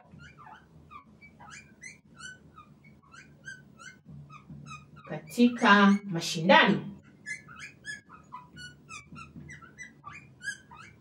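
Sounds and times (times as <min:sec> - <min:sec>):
marker squeaking on board: 0:00.0 - 0:06.1, 0:07.0 - 0:11.0.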